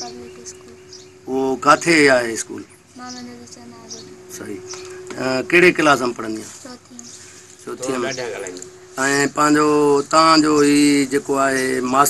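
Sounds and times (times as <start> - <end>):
man chanting held notes: 7.6 - 12.0.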